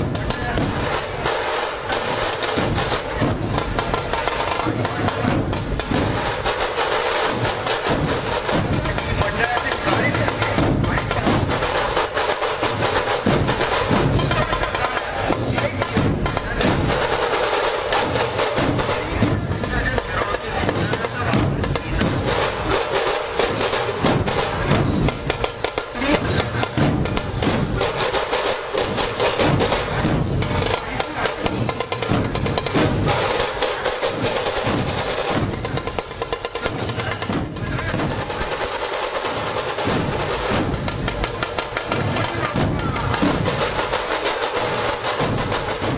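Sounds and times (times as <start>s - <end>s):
dhol drums beating: 0.0s - 45.9s.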